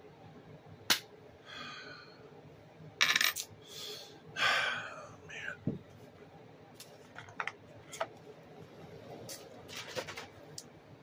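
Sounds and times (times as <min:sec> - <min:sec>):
coin clattering on desk: 0:03.0 - 0:03.5.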